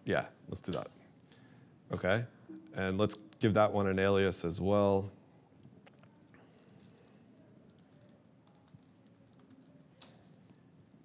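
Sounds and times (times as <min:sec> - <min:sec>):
keyboard typing: 0:06.7 - 0:11.0.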